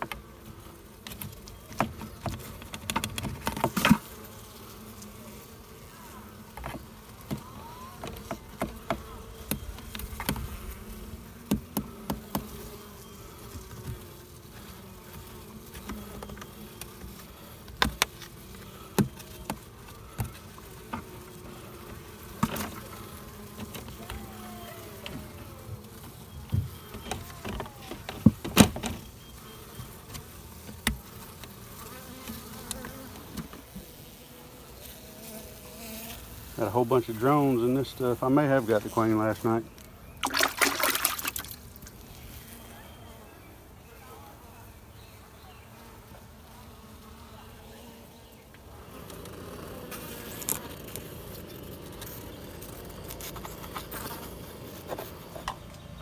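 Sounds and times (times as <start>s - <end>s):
honey bees buzzing: 0.0s - 56.0s.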